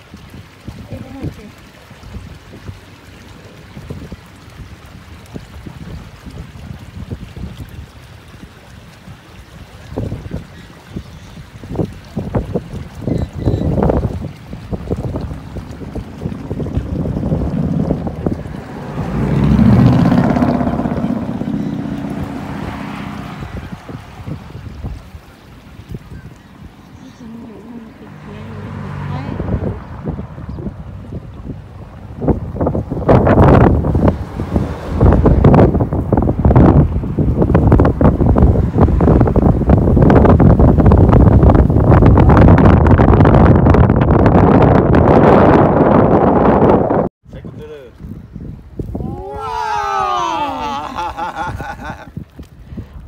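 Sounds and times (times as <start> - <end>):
wind buffeting microphone: 0.0 - 53.0
road vehicle passing: 14.7 - 25.8, 26.7 - 42.2.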